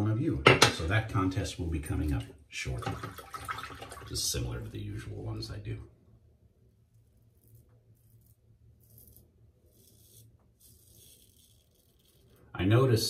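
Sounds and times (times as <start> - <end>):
razor scraping stubble: 6.9 - 12.5.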